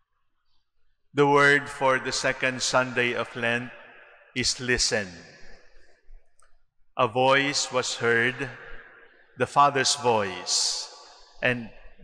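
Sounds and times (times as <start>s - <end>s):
man speaking in reverberant church: 1.1s - 6.0s, 7.0s - 12.0s.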